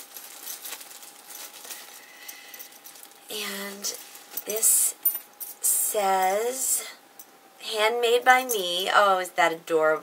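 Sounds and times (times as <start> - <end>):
plastic bag crinkling: 0.0 - 5.5.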